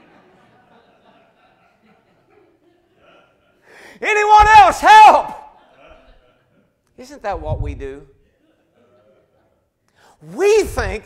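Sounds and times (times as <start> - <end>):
man's sharp intake of breath: 3.6 - 4.0.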